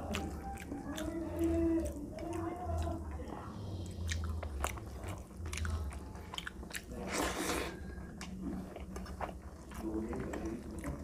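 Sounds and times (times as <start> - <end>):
wet chewing mouth clicks: 0.0 - 7.4.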